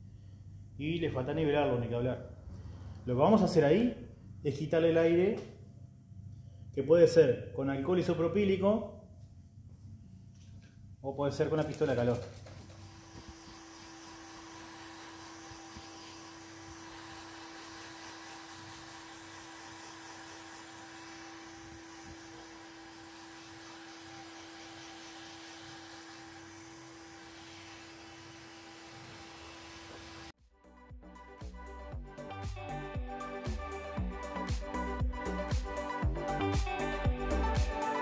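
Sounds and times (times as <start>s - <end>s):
heat gun blowing: 12.5s - 30.4s
music: 30.4s - 38.0s.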